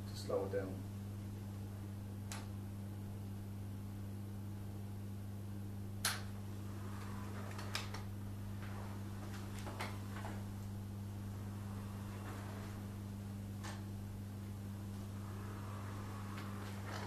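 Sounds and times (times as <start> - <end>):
powered wheelchair hum: 6.1 - 17.0.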